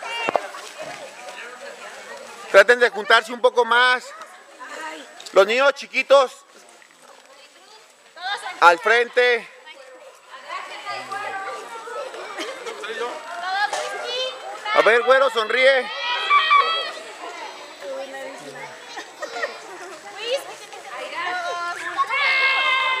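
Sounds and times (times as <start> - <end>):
children chattering: 0.0 - 23.0.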